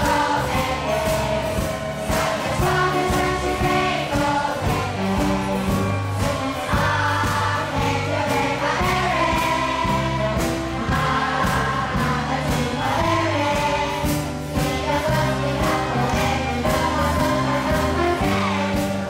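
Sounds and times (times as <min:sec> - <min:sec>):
children's choir singing: 0:00.0 - 0:19.0
instrumental accompaniment with beat: 0:00.0 - 0:19.0.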